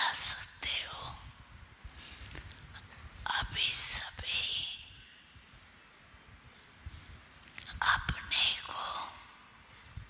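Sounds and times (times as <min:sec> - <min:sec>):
woman whispering breathily: 0:00.0 - 0:01.3, 0:02.8 - 0:05.0, 0:07.6 - 0:09.5.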